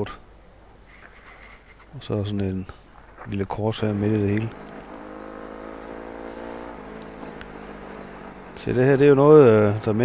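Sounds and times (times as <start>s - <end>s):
motorcycle engine running: 3.8s - 10.0s.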